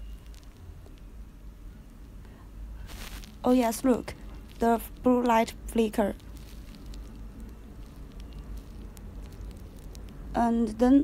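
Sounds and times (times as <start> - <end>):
faint small clicks: 0.0 - 1.1, 6.2 - 10.2
low hum: 0.0 - 11.0.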